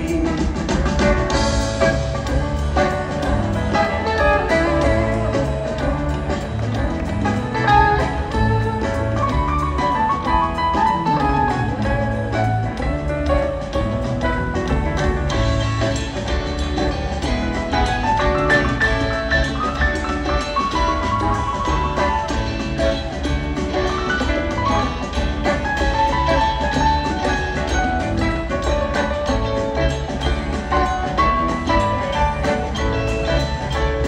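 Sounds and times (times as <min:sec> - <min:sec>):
bass guitar: 0:00.0 - 0:34.0
drum kit: 0:00.0 - 0:34.0
electric guitars: 0:00.0 - 0:34.0.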